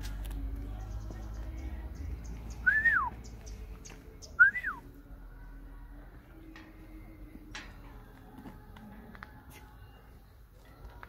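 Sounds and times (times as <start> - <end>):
whistled notes sliding down: 2.6 - 3.2.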